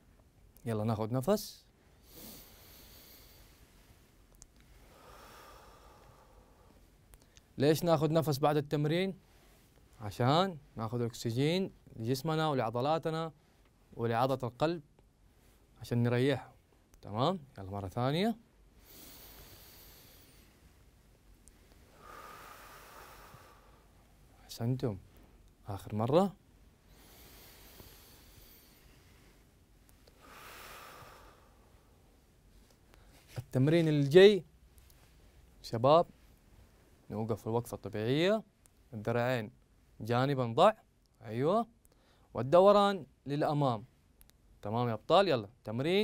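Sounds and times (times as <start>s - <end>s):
man taking deep breath: 1.9s - 4.0s, 4.6s - 7.4s, 18.7s - 20.8s, 21.6s - 24.0s, 26.9s - 32.0s.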